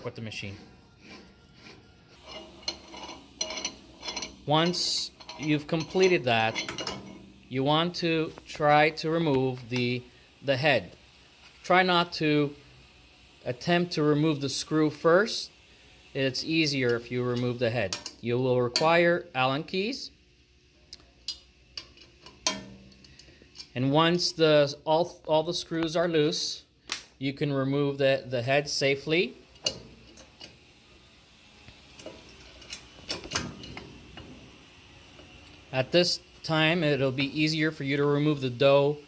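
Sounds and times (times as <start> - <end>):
steel parts clinking and scraping: 0.0 - 10.0, 29.5 - 30.6, 31.9 - 39.0.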